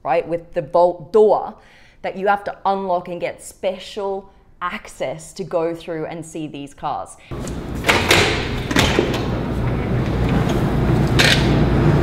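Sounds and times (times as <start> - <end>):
sharp clicks and knocks: 7.4 - 11.6.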